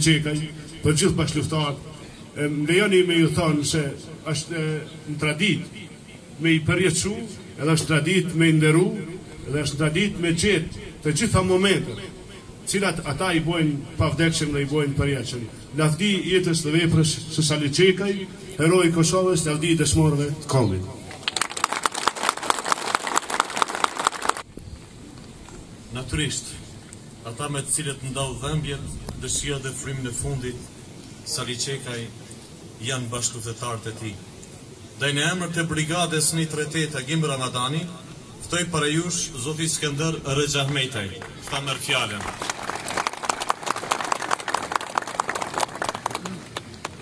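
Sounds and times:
crowd applauding: 21.1s - 24.4s, 41.2s - 47.0s.

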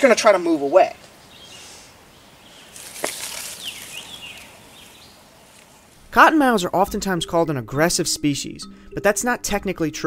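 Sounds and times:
quiet woodland background: 0.0s - 10.0s
dry leaves rustling and crackling: 2.5s - 6.0s.

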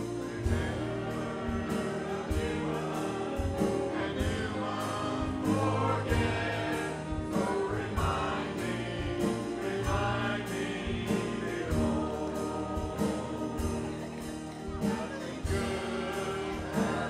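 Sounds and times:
choir singing a hymn: 0.0s - 17.0s
drum beat: 0.0s - 17.0s
sustained bass notes: 0.0s - 17.0s.

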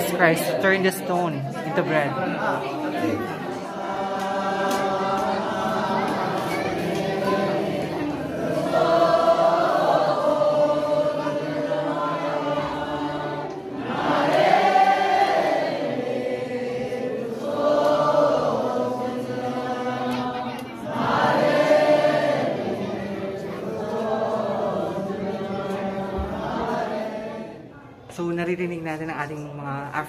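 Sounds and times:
crowd chanting a prayer: 0.0s - 28.1s.

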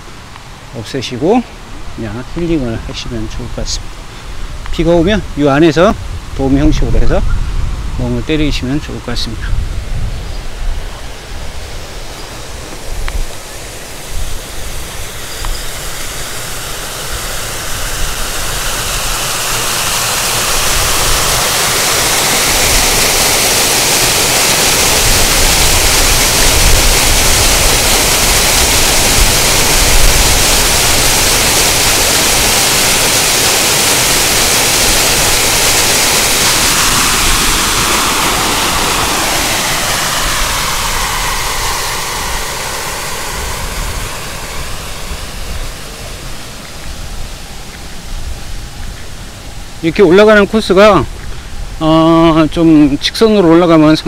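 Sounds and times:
water rushing down stone cascade: 10.7s - 54.0s.

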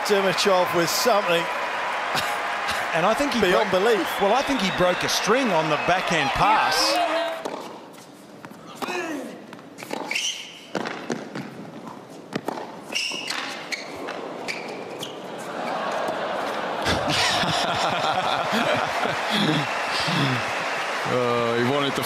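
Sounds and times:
crowd noise: 0.0s - 7.5s, 14.2s - 22.0s
shoe squeaks on court: 9.8s - 11.0s, 11.8s - 15.3s.

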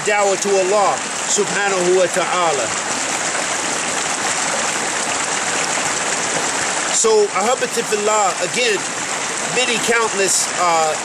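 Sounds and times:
creek running over rocks: 0.0s - 11.0s.

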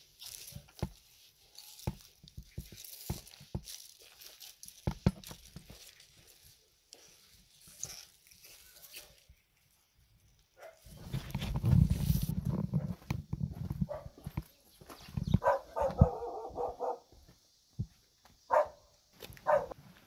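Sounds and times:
dog barking: 10.6s - 11.0s, 13.9s - 14.2s, 15.4s - 17.1s, 18.5s - 19.8s.

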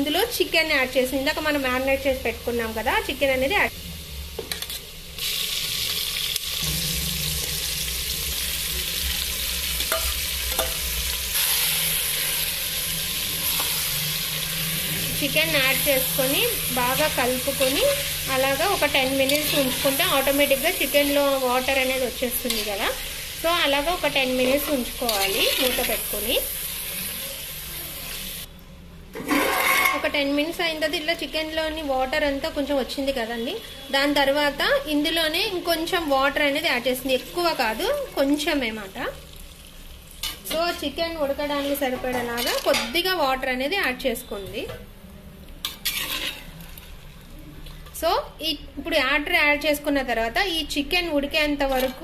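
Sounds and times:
hot oil sizzling in a pot: 0.0s - 28.5s, 29.3s - 44.4s, 45.4s - 52.0s.

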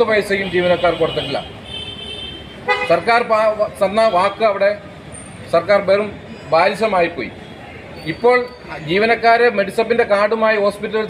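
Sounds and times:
man speaking: 0.0s - 1.6s, 2.7s - 4.9s, 5.5s - 7.4s, 8.1s - 11.0s
vehicle horn: 0.5s - 3.1s.

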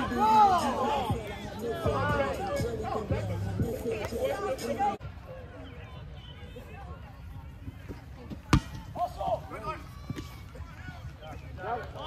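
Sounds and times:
players shouting: 0.0s - 7.0s, 8.5s - 12.0s
ball kick thud: 7.9s - 9.0s.

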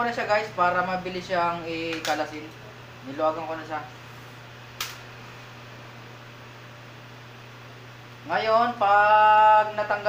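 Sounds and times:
sharp click: 4.8s - 5.0s.

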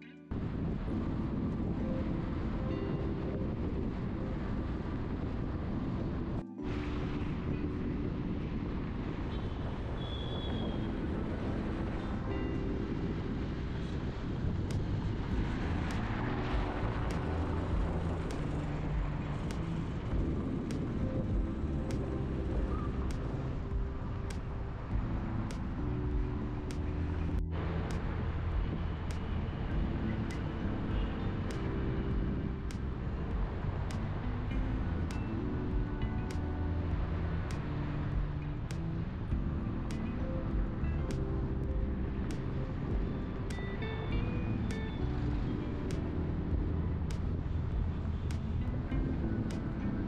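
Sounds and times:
soft background music: 0.0s - 50.0s
car road and engine noise: 0.3s - 50.0s.

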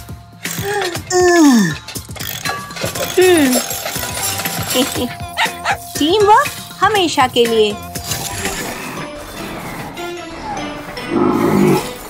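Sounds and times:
background music: 0.0s - 12.0s
cartoon dog barking: 5.1s - 5.9s.

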